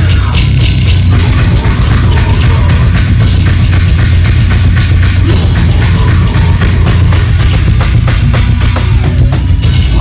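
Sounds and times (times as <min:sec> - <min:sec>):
distorted guitars and bass: 0:00.0 - 0:10.0
fast drumming: 0:00.0 - 0:10.0.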